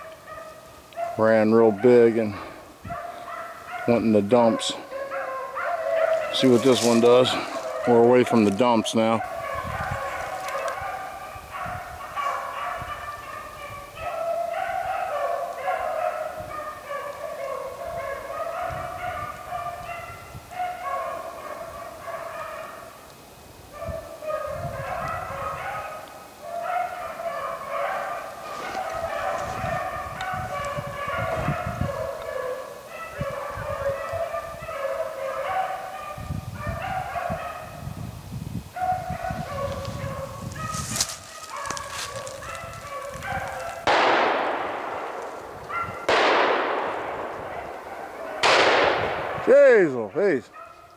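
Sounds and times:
pack of dogs baying: 0:00.0 - 0:23.1, 0:23.7 - 0:38.0, 0:38.7 - 0:50.9.

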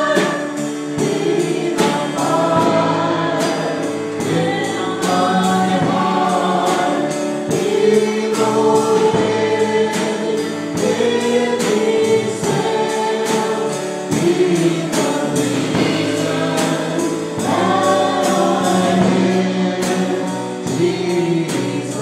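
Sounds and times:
accompaniment with steady beat: 0:00.0 - 0:22.0
group singing worship song: 0:00.0 - 0:22.0.

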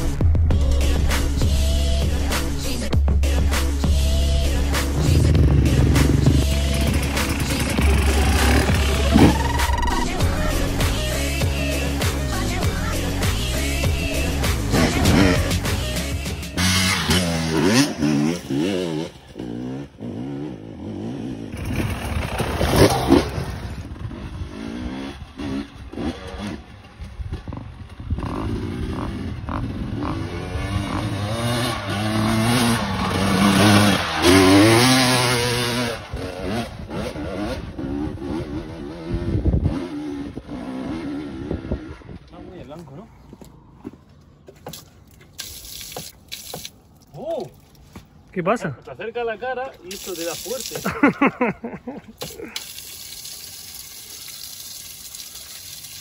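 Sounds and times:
dirt bike engine revving: 0:03.2 - 0:42.2.

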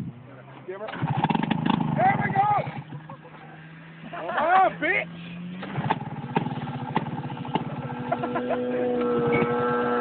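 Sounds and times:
snowmobile engine idling unevenly: 0:00.4 - 0:10.0.

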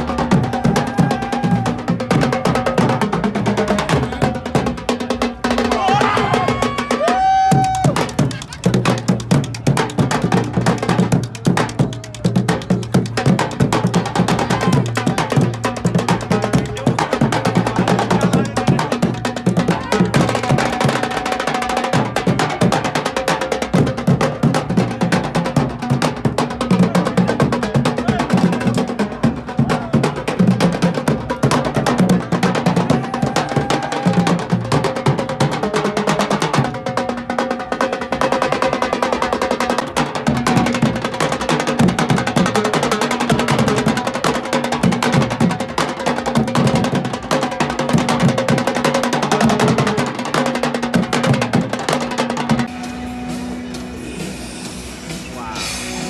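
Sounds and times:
bass drums beating: 0:00.0 - 0:37.1
snare drums with rolls: 0:00.0 - 0:56.0.

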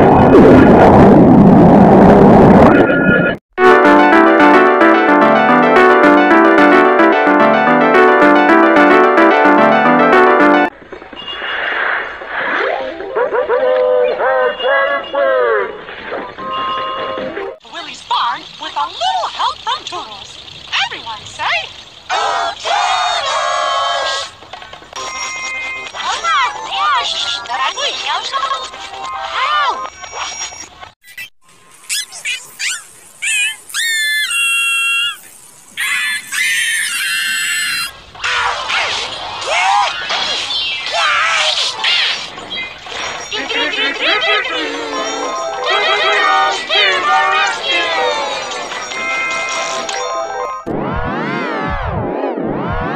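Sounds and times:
pitch-shifted cartoon voices singing: 0:03.7 - 0:10.7, 0:22.1 - 0:24.3, 0:43.3 - 0:48.7
squeaky pitch-shifted cartoon voice: 0:31.0 - 0:31.3, 0:31.9 - 0:37.9.

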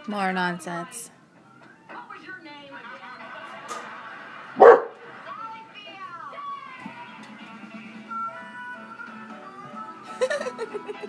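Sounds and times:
dog barking: 0:04.6 - 0:05.1.

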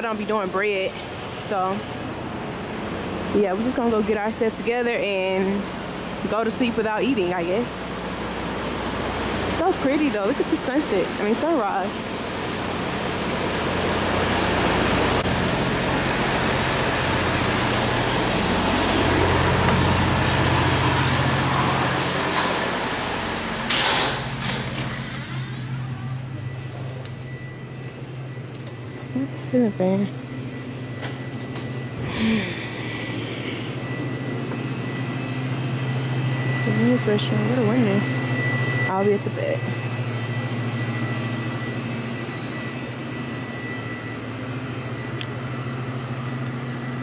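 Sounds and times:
diesel truck engines idling: 0:00.0 - 0:47.0
low mechanical hum: 0:00.0 - 0:47.0
thin high tone: 0:24.9 - 0:47.0.

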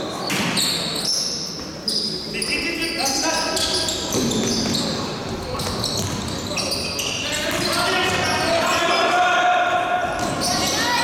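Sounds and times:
sneakers squeaking on court: 0:00.0 - 0:09.0, 0:10.0 - 0:11.0.

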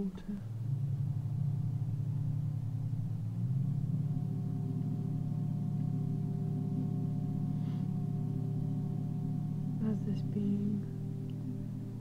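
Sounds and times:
higher held tones: 0:00.0 - 0:12.0
low gong-like drone: 0:00.0 - 0:12.0.

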